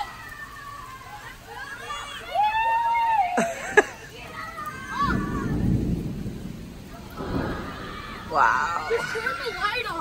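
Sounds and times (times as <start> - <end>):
rain: 0.0 - 10.0
thunder rumbling: 4.2 - 10.0.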